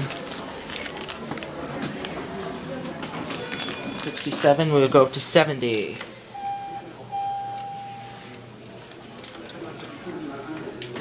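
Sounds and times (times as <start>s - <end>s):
elevator chime: 6.4s - 8.1s.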